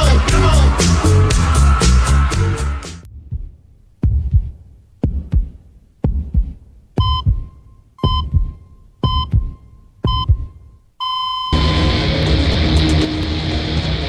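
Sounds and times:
heartbeat double thump: 3.1 - 10.7
heart monitor beep: 7.0 - 12.1
flatline tone: 7.0 - 13.3
guitar music: 11.6 - 14.0.

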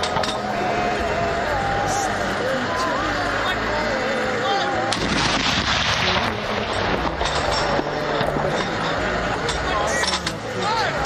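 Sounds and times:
long echoing rumble: 0.0 - 9.7
howitzer firing boom: 5.0 - 7.0.

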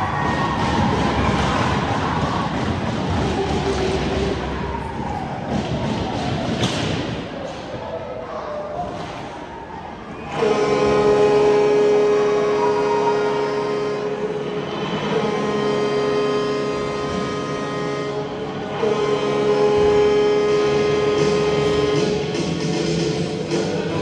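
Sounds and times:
loud arena horn blasts: 10.2 - 24.0.

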